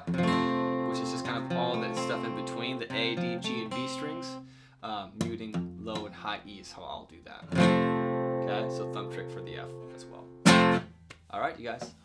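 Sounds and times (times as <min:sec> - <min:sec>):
acoustic guitar chord strummed: 0:00.1 - 0:04.4, 0:07.5 - 0:10.8.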